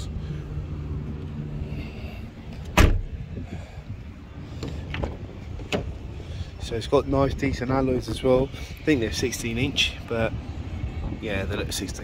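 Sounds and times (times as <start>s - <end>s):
car tailgate thump: 2.7s - 3.1s.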